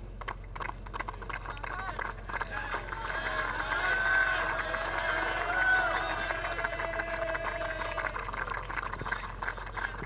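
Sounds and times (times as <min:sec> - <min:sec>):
audience applause: 0:00.2 - 0:10.0.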